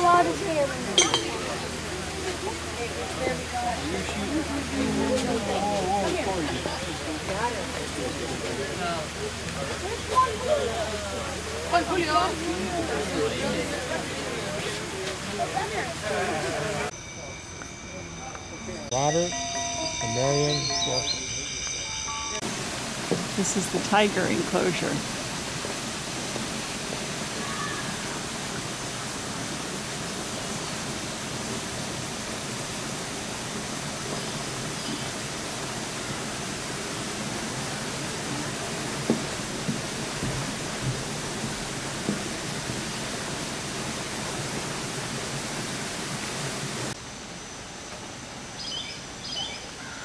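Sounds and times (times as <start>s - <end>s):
outdoor ambience: 0.0s - 50.0s
steady rushing hiss: 0.0s - 50.0s.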